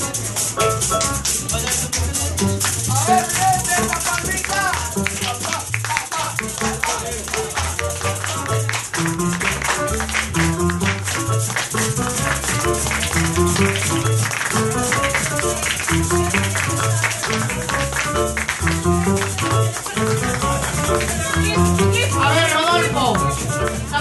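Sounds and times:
bass line: 0.0s - 24.0s
maracas shaking: 0.0s - 24.0s.

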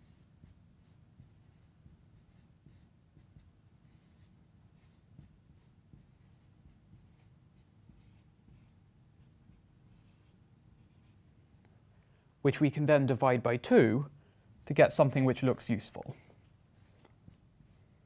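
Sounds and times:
marker pen on whiteboard: 0.0s - 11.2s, 14.6s - 16.0s, 16.7s - 17.9s.

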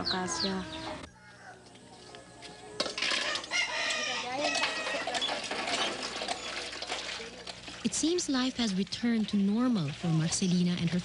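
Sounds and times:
rooster crowing: 0.6s - 5.1s.

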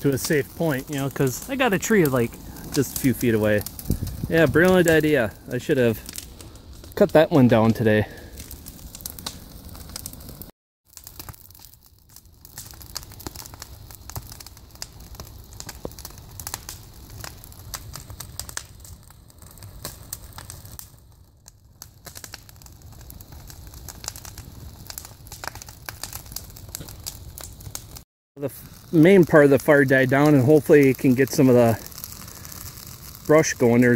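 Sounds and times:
fire crackling and popping: 0.0s - 33.9s.

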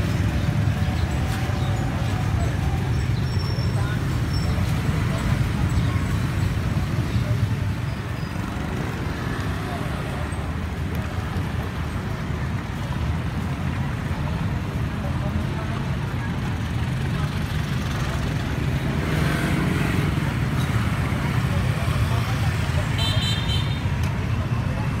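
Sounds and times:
street traffic noise: 0.0s - 25.0s.

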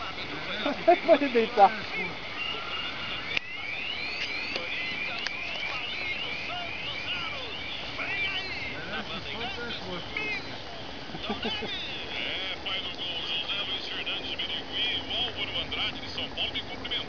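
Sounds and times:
faint voices: 0.0s - 17.0s
bird chirping: 0.8s - 12.4s.

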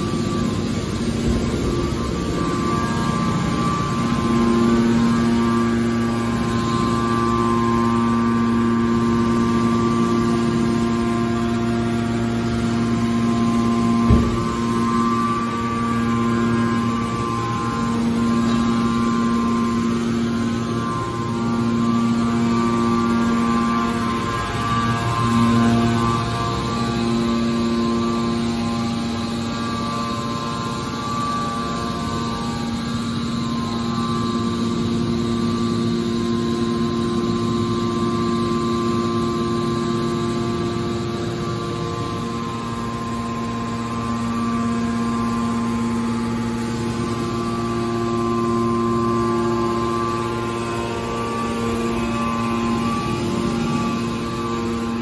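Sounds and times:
hydraulic pump motor hum: 0.0s - 55.0s
whine of held tones: 0.0s - 55.0s.

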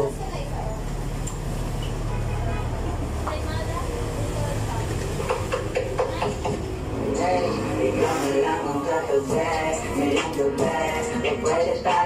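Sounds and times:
low rumble of street traffic: 0.0s - 12.0s
indistinct voices: 3.2s - 12.0s.

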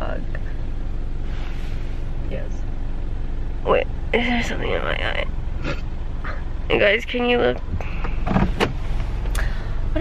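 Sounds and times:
car cabin rumble while driving: 0.0s - 10.0s.

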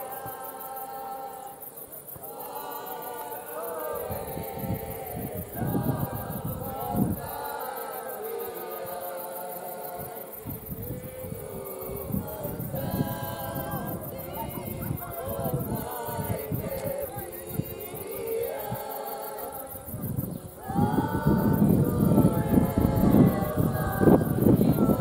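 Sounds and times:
group singing unaccompanied: 0.0s - 25.0s.

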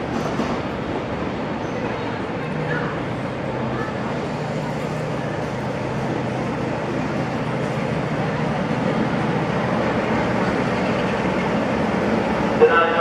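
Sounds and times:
diesel locomotive engine rumble: 0.0s - 13.0s
voices: 1.6s - 11.8s, 12.4s - 13.0s.

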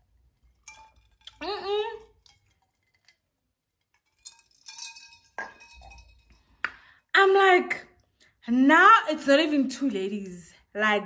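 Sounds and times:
wine glass clinking: 4.2s - 6.6s.

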